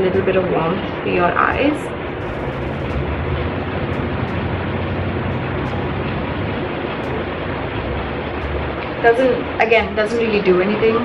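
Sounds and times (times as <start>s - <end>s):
electric fan running: 0.0s - 11.0s.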